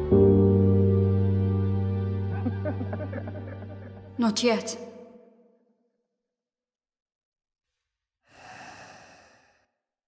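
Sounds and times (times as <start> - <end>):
person sighing: 8.3 - 9.6.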